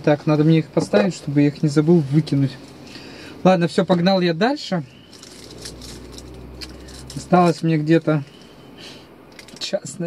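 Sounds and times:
car engine idling: 0.0 - 9.7
faint rattles and clicks: 9.3 - 9.8.

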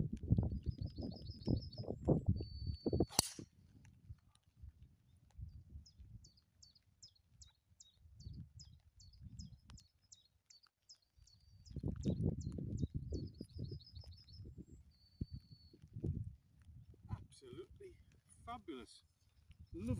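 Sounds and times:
golf ball struck by club: 3.1 - 3.4.

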